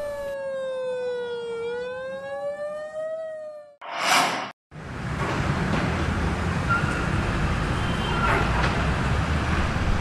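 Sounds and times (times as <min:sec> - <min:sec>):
siren wailing: 0:00.0 - 0:03.8.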